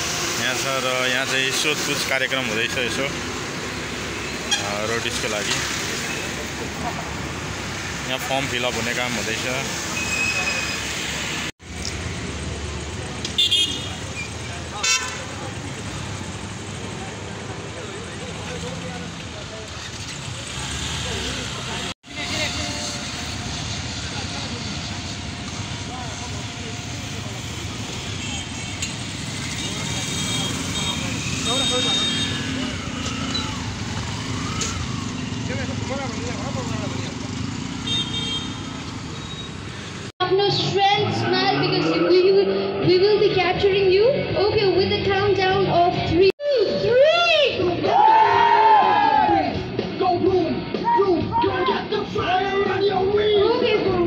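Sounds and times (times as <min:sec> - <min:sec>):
roadside traffic: 0:00.0 - 0:54.0
vehicle horn toots: 0:04.5 - 0:04.8, 0:13.3 - 0:14.1, 0:14.8 - 0:15.3, 0:29.5 - 0:32.6, 0:37.8 - 0:39.5.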